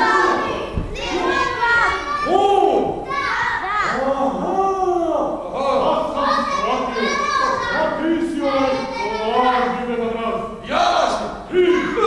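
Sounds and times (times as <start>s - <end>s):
children shouting and talking: 0.0s - 12.0s.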